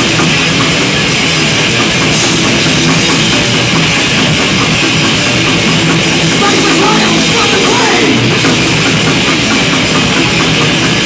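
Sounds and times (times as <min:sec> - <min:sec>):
bass guitar: 0:00.0 - 0:11.0
distorted electric guitars: 0:00.0 - 0:11.0
drum kit: 0:00.0 - 0:11.0.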